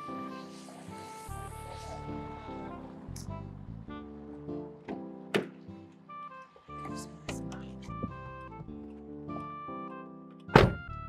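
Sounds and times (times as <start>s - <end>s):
background music: 0.0s - 11.0s
car door slamming shut: 4.9s - 5.6s, 10.5s - 10.9s.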